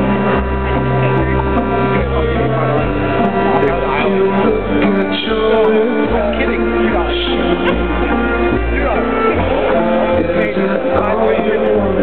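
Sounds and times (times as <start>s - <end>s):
deep bass notes: 0.0s - 12.0s
held chord: 0.0s - 12.0s.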